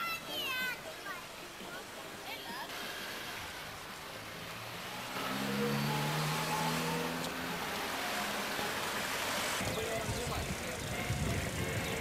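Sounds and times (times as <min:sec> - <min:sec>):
street noise rush: 0:00.0 - 0:12.0
passing vehicle engine hum: 0:02.8 - 0:11.7.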